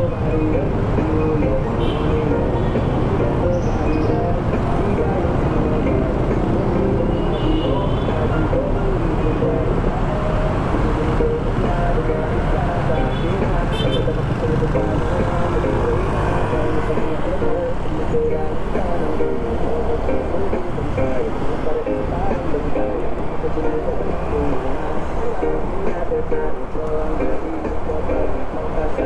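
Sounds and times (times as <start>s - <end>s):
motorcycle riding: 0.0s - 26.6s
traffic engines and road noise: 0.0s - 29.0s
horn toots: 7.0s - 8.2s, 13.0s - 14.2s.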